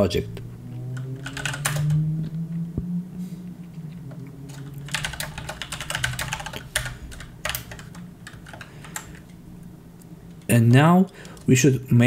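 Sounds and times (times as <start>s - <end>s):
typing on computer keyboard: 1.2s - 2.0s, 4.5s - 9.2s.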